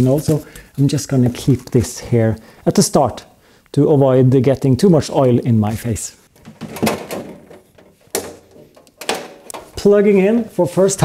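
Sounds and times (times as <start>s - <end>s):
power cord handling noise: 6.4s - 9.9s.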